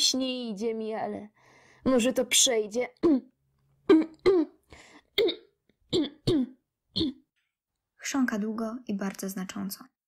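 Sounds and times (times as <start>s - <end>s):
person clearing throat: 3.9s - 7.3s.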